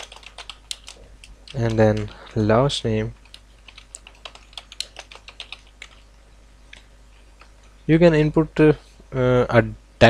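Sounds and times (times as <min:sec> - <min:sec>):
computer keyboard typing: 0:00.0 - 0:06.1, 0:06.7 - 0:07.7.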